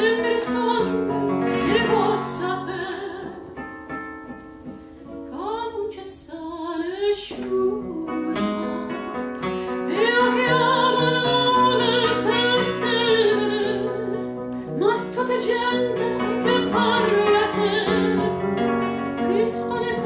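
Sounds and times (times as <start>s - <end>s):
woman singing with vibrato: 0.0s - 3.6s, 5.3s - 20.0s
classical guitar: 0.0s - 20.0s.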